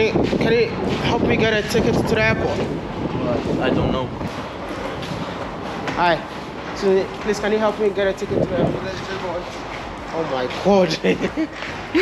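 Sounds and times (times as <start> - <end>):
underground train running: 0.0 - 12.0.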